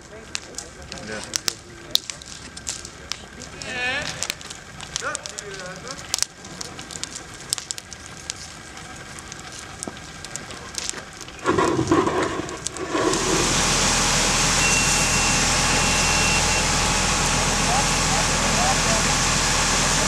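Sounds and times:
burning car crackling and popping: 0:00.0 - 0:20.0
fire hose spraying water: 0:00.3 - 0:20.0.

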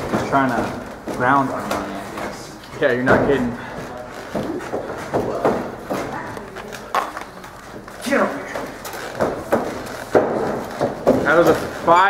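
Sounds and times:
indistinct talking in echoing hall: 0:00.0 - 0:12.0
sharp knocks: 0:08.4 - 0:11.9.

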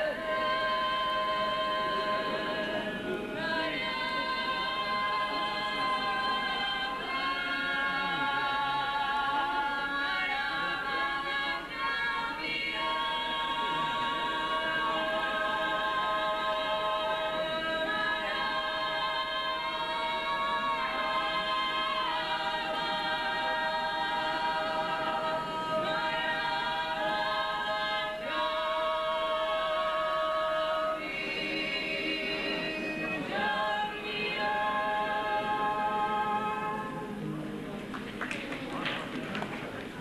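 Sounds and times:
choir singing unaccompanied: 0:00.0 - 0:37.9.

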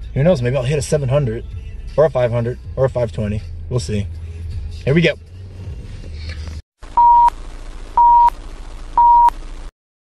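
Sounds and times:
short electronic beeps: 0:07.0 - 0:07.4, 0:08.0 - 0:08.4, 0:09.0 - 0:09.4.

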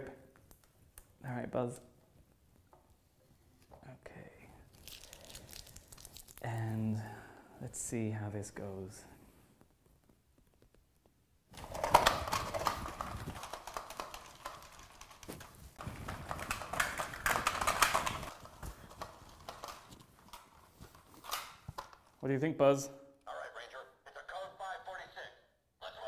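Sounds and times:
plastic toy clattering and rustling: 0:11.6 - 0:22.2.

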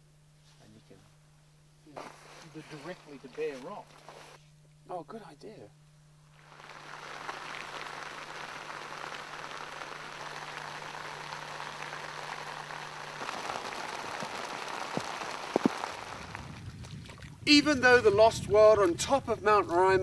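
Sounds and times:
faint low hum: 0:00.0 - 0:20.0
rain on rock and vegetation: 0:06.3 - 0:16.9.

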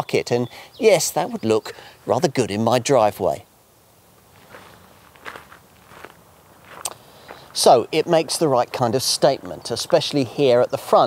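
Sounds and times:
footsteps on loose gravel: 0:04.2 - 0:10.6.

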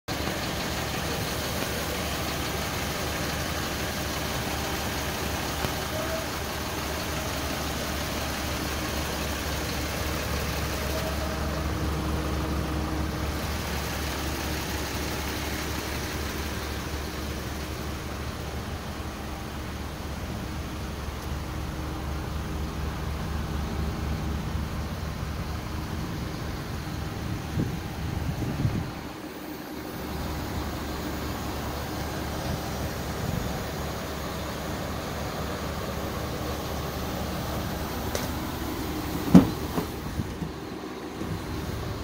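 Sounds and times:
van engine idling: 0:00.0 - 0:42.0.

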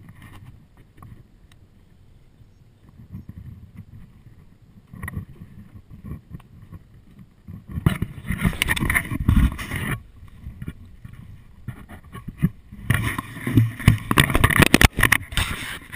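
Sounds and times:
low rumble of moving water: 0:00.0 - 0:15.9.

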